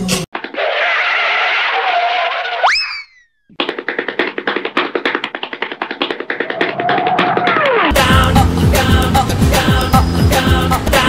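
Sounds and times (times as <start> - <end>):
fast rhythmic ticking music: 7.8 - 11.0.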